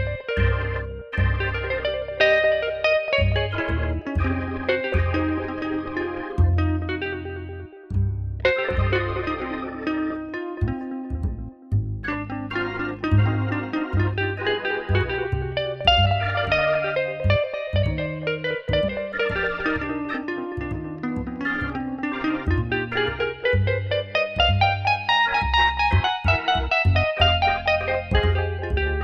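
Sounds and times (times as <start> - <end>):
jazz guitar: 0.0 - 29.0
walking bass line: 0.0 - 29.0.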